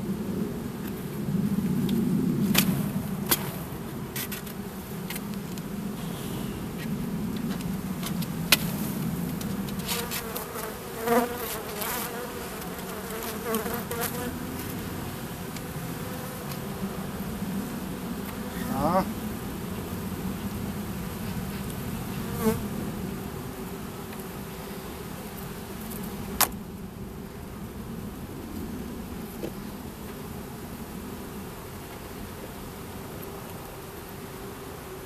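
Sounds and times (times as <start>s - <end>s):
bees buzzing: 1.6s - 35.0s.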